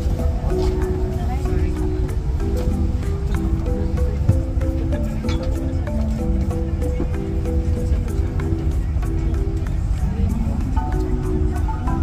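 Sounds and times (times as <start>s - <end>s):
held pitched music notes: 0.0s - 12.0s
steady low rumble: 0.0s - 12.0s.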